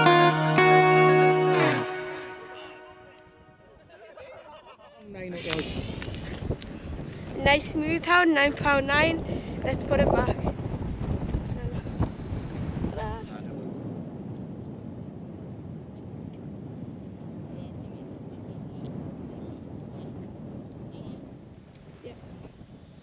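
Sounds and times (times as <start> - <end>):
wind buffeting microphone: 5.0 - 23.0.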